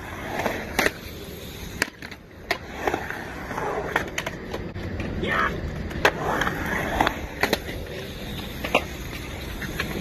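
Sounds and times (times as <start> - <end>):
skateboard clack: 0.0 - 10.0
skateboard wheels rolling on concrete: 0.0 - 10.0.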